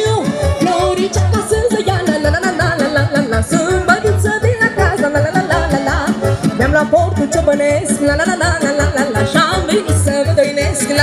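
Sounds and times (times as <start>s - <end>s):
fast folk dance music: 0.0s - 11.0s.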